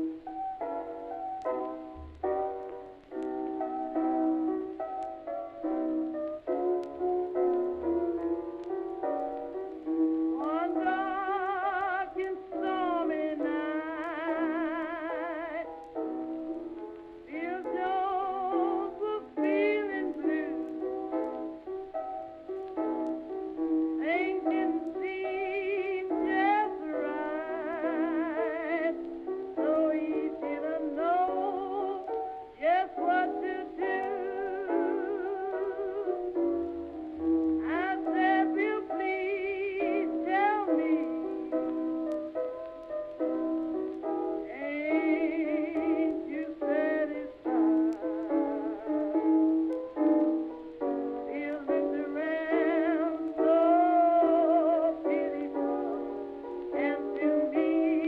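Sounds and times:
piano accompaniment: 0.0s - 58.0s
woman singing with vibrato: 10.4s - 15.7s, 17.3s - 20.6s, 24.0s - 29.0s, 29.6s - 36.3s, 37.6s - 41.5s, 44.5s - 49.0s, 51.2s - 56.1s, 56.7s - 58.0s.

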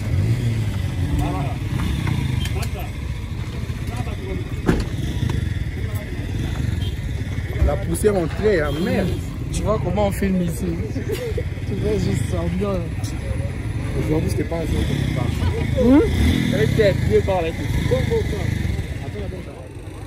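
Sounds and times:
people talking over one another: 0.0s - 20.0s.

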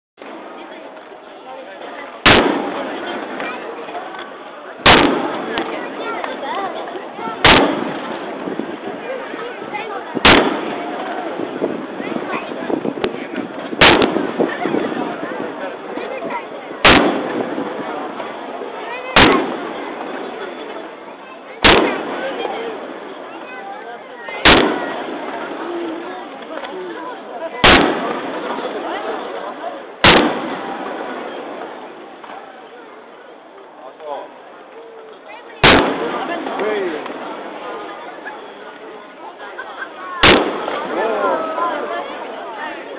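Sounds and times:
people talking: 0.2s - 42.9s
firework shells bursting: 1.8s - 21.0s, 21.6s - 23.4s, 24.3s - 26.8s, 27.6s - 32.5s, 35.1s - 38.6s, 40.2s - 41.2s
echo of bangs: 2.2s - 3.9s, 4.8s - 8.9s, 10.1s - 16.1s, 16.8s - 20.4s, 21.6s - 23.3s, 24.4s - 25.9s, 27.6s - 29.2s, 30.0s - 32.4s, 35.6s - 37.7s, 40.2s - 41.5s.

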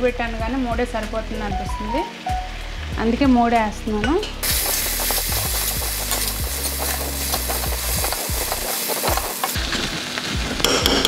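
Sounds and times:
frying sizzle: 0.0s - 11.0s
metal spoon scraping a pan: 4.2s - 9.6s.

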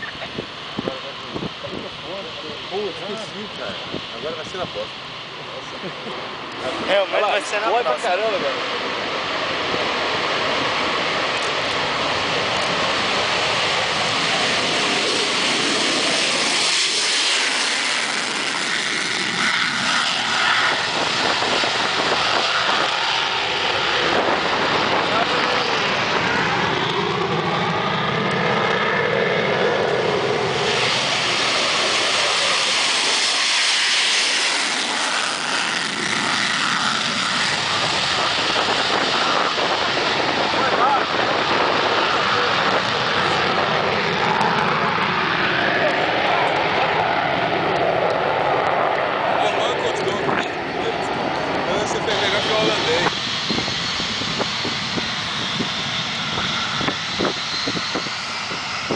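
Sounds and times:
fighter jet engine roaring: 0.0s - 58.9s.

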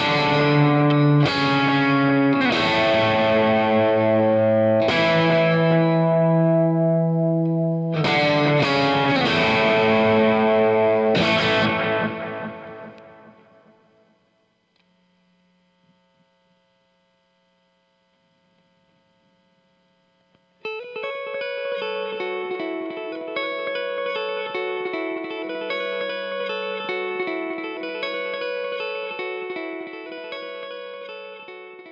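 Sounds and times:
electric guitar with delay echoes: 0.0s - 14.2s, 20.6s - 31.9s.

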